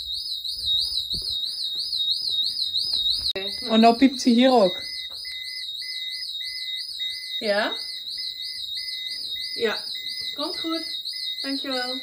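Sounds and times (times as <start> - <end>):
alarm siren warbling: 0.0 - 12.0.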